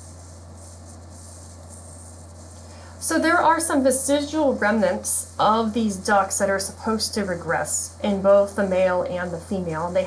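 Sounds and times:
faint hiss: 0.0 - 10.0
steady low hum: 0.0 - 10.0.

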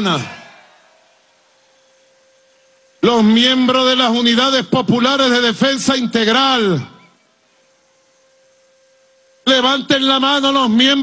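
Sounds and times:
faint hiss: 0.0 - 5.4, 6.2 - 11.0
thin steady tone: 1.2 - 11.0.

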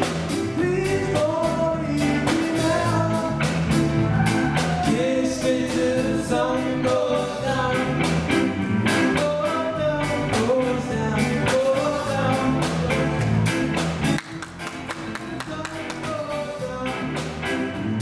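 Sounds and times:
person singing: 0.0 - 8.2, 8.8 - 13.2, 14.2 - 17.4
live band playing: 0.0 - 18.0.

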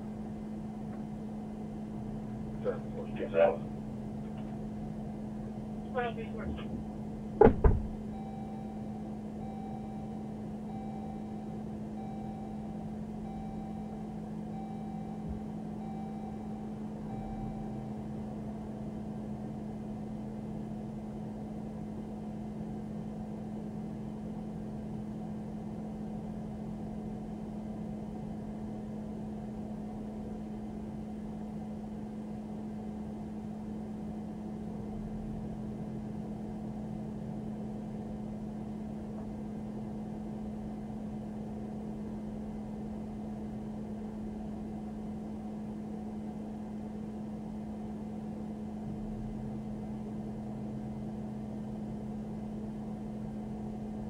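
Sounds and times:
electronic warning chime: 8.1 - 18.0.

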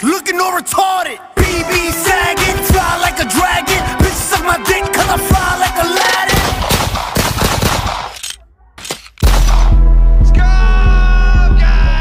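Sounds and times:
hip-hop beat with heavy bass: 1.4 - 7.2, 9.2 - 12.0
machine-gun fire: 6.3 - 8.3, 9.2 - 9.8.

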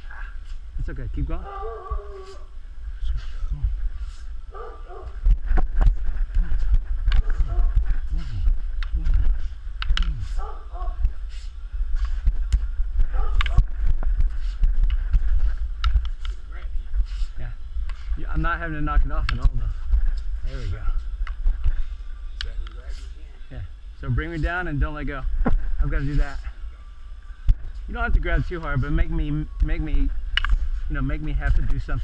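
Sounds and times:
low rumble of movement: 0.0 - 32.0.

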